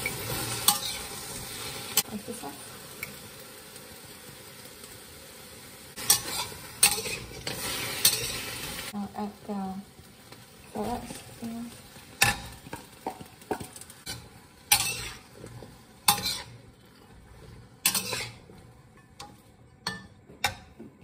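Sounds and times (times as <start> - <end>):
food sizzling in a pan: 0.0 - 21.0
utensil clanking against pan: 12.2 - 16.6, 17.4 - 21.0.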